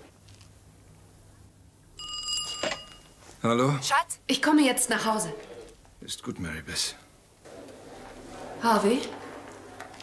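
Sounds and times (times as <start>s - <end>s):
telephone ringing: 2.0s - 3.2s.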